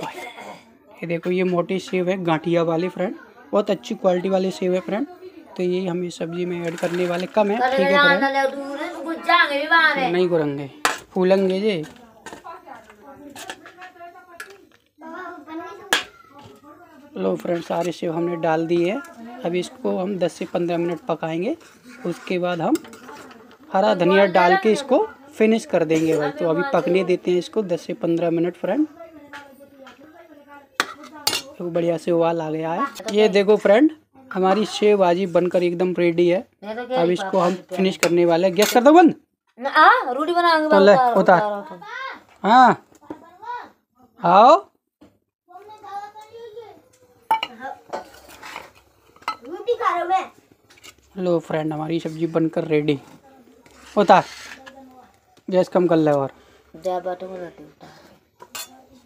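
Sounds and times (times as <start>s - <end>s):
steel kitchenware clinking: 10.8s - 14.6s, 21.6s - 23.5s, 30.8s - 31.7s, 37.8s - 39.0s, 47.3s - 49.5s, 58.4s - 58.9s
metal ladle clinking on plate: 30.8s - 31.5s, 47.3s - 48.4s, 58.4s - 58.8s.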